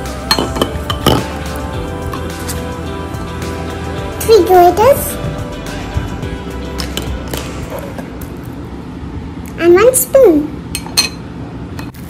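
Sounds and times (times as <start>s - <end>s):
background music: 0.0s - 8.6s.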